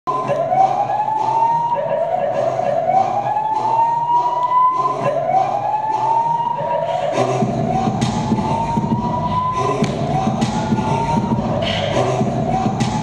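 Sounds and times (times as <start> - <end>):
siren wail rising in pitch: 0.1 - 13.0.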